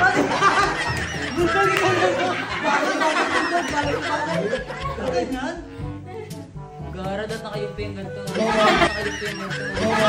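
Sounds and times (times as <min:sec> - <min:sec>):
laughter: 0:00.0 - 0:05.3, 0:08.3 - 0:10.0.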